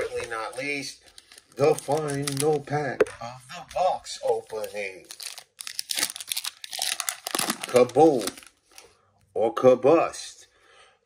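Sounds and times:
foil wrapper tearing and crinkling: 0.0s - 2.6s, 4.5s - 8.8s.

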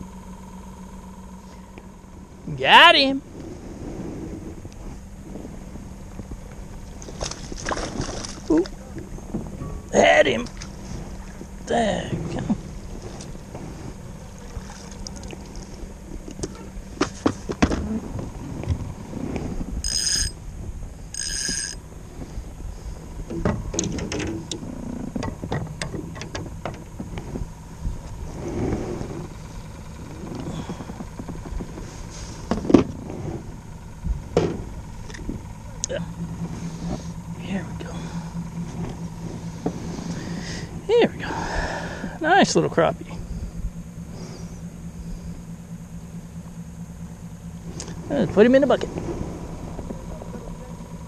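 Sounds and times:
fishing gear clattering in boat: 6.6s - 19.0s, 21.1s - 28.2s, 29.0s - 35.7s.

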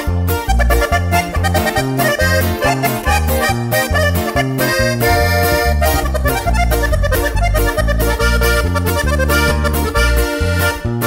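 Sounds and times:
accordion playing: 0.0s - 11.0s
bass line: 0.0s - 11.0s
guitar: 0.0s - 11.0s.

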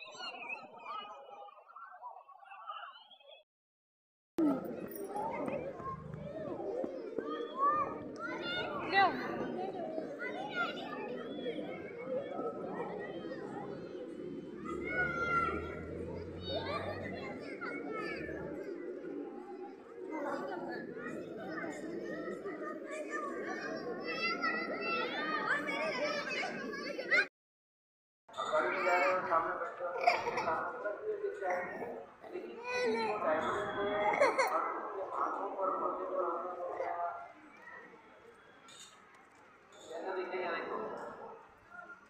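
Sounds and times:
children playing voices: 4.4s - 27.3s.

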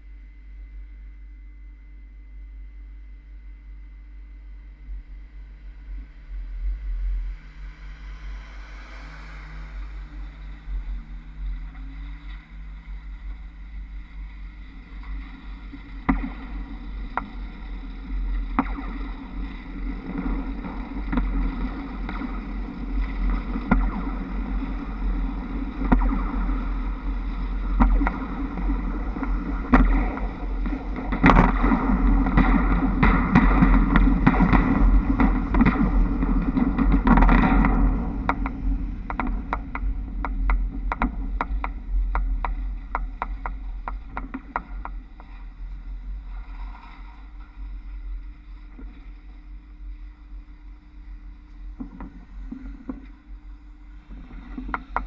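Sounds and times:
rushing wind and running noise: 19.3s - 46.8s.

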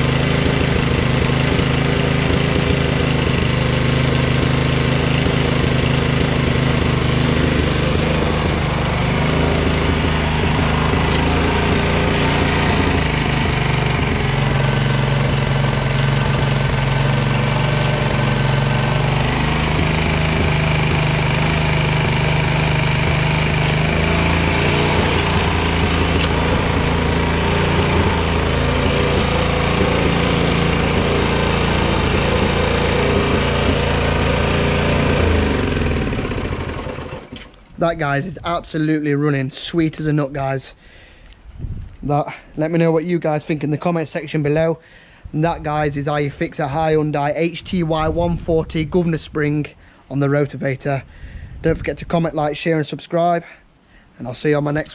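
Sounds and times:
rotavator engine running: 0.0s - 38.3s.

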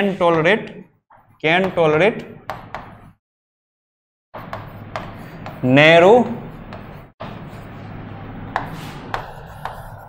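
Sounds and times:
pen writing on screen: 4.4s - 7.8s, 8.5s - 10.0s.

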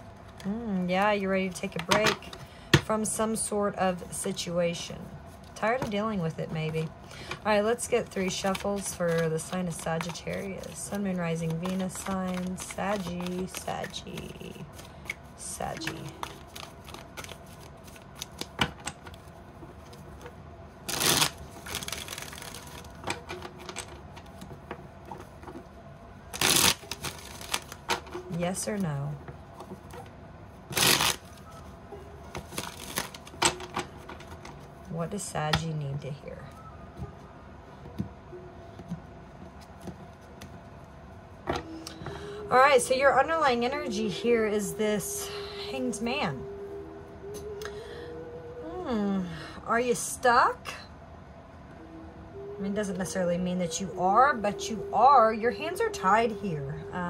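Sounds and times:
cards riffling: 8.2s - 19.3s, 20.8s - 24.5s, 26.3s - 28.1s, 30.7s - 31.4s, 32.3s - 34.6s
cards tapping and rustling: 8.2s - 19.3s.

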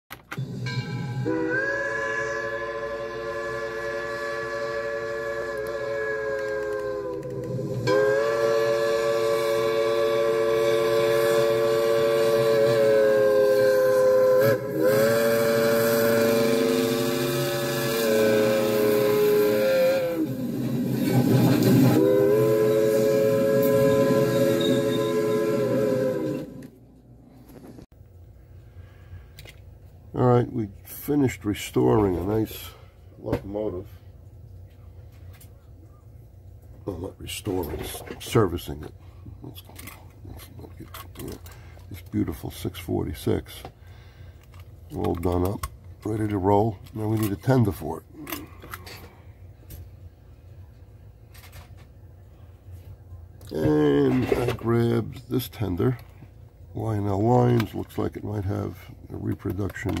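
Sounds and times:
steam locomotive whistle: 0.4s - 26.8s, 46.1s - 49.1s.

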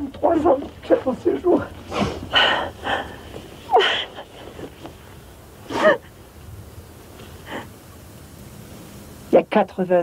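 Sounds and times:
loud gasping breaths: 1.9s - 4.4s.

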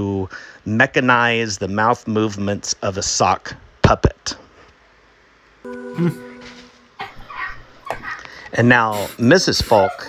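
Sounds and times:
person humming: 5.7s - 7.1s.

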